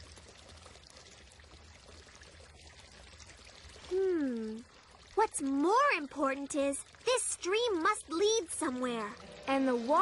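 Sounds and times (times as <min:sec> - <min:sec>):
stream trickling: 0:00.0 - 0:10.0.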